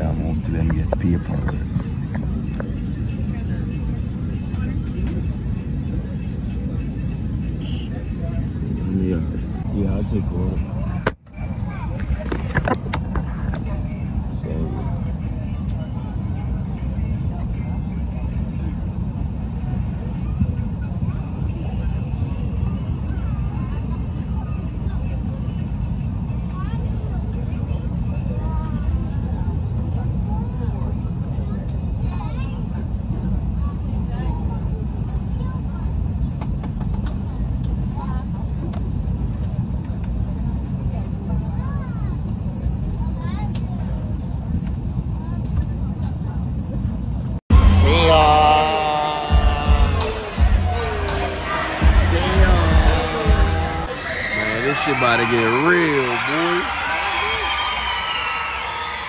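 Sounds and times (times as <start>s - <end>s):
airliner engine rumble: 0.0s - 56.1s
faint voices: 0.0s - 58.8s.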